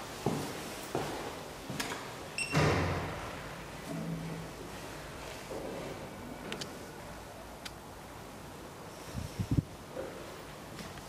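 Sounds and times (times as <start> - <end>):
footsteps on hard floor: 0.2 - 1.3
heavy door banging shut: 2.5 - 3.2.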